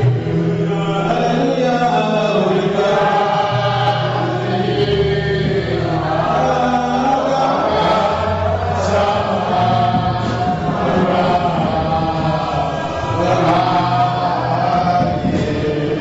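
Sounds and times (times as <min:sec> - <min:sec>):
congregation singing: 0:00.0 - 0:16.0
low accompaniment: 0:00.0 - 0:16.0.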